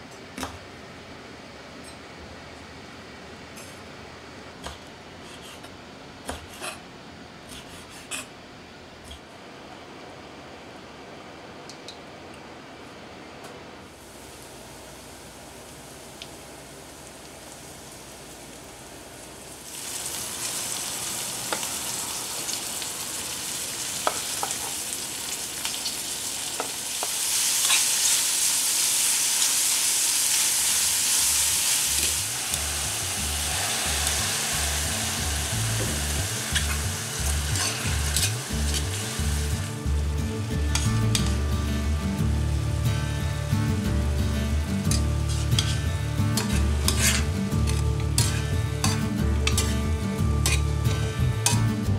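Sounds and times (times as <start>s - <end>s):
food sizzling in frying pan: 13.9s - 51.9s.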